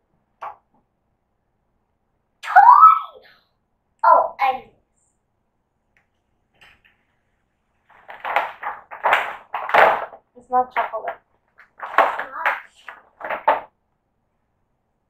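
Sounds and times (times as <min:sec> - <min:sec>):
child's voice: 0:02.4 - 0:03.4, 0:04.0 - 0:04.9, 0:10.4 - 0:11.2, 0:11.9 - 0:13.0
paper gift bag rustling: 0:07.8 - 0:10.1.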